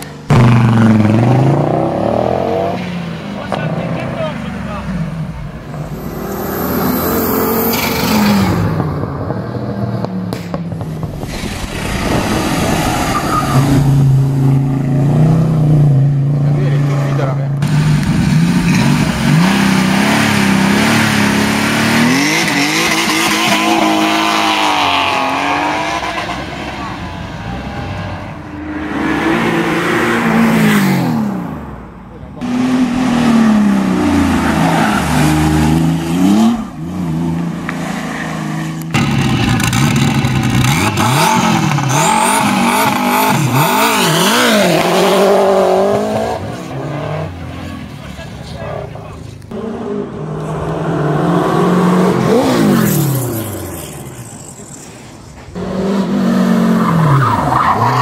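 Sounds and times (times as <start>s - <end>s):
racing car engines revving: 0.0s - 58.0s.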